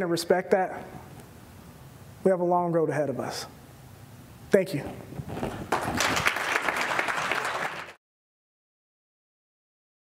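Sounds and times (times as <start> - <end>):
audience applauding: 5.7 - 8.0.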